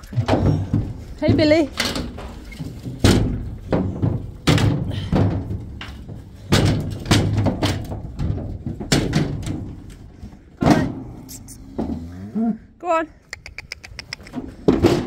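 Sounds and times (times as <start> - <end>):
hooves striking trailer floor: 0.0 - 12.1, 13.9 - 15.0
bull bumping metal gates: 0.0 - 12.4, 14.2 - 15.0.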